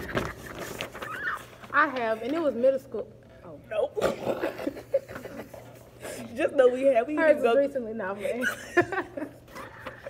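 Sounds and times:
paper signs rustling: 0.0s - 2.7s.

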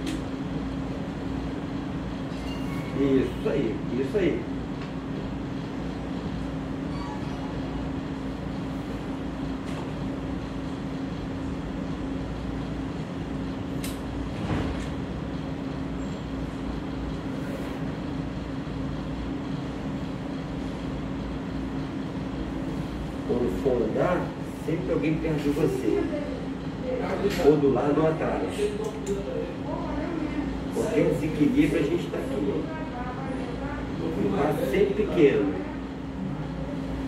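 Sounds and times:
machine hum: 0.0s - 37.0s.

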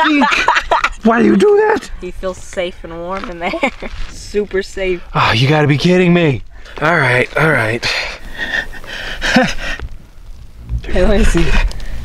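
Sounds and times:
man laughing breathily: 8.3s - 9.9s.

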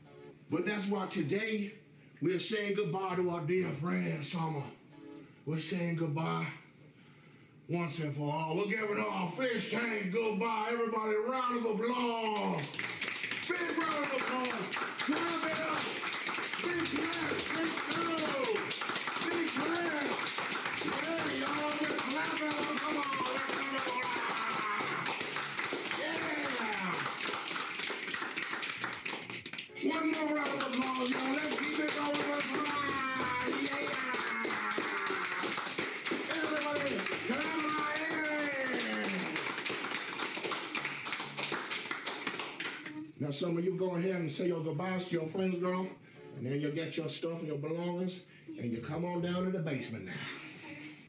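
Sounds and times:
people clapping: 11.9s - 43.0s.

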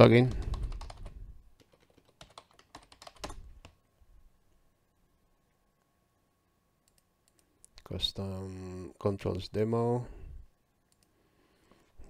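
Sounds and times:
keyboard typing: 0.3s - 3.8s.

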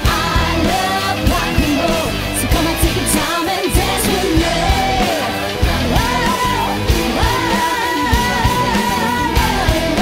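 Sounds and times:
drum beat: 0.0s - 10.0s
rock band music: 0.0s - 10.0s.

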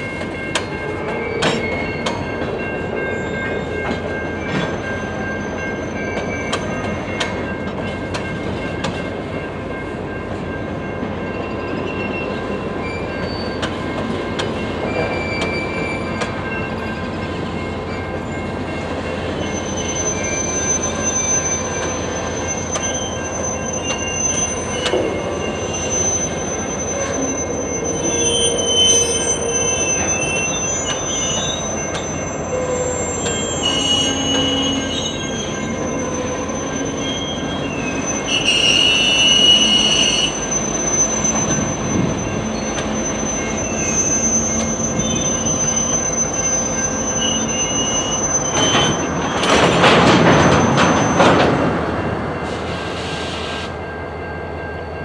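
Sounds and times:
train wheels rolling on rail: 0.0s - 55.0s
high-pitched wheel squeal: 19.4s - 51.5s.

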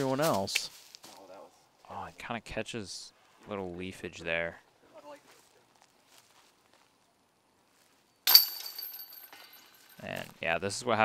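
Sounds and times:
metallic chain jingle: 8.3s - 10.0s.

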